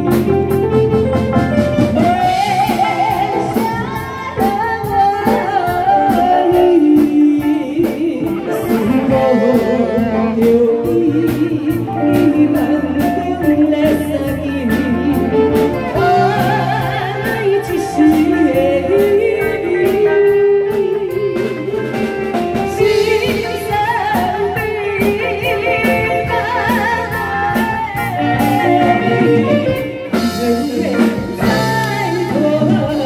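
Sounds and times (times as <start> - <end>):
backing music with drum beat: 0.0 - 33.0
woman singing pop song: 1.9 - 33.0.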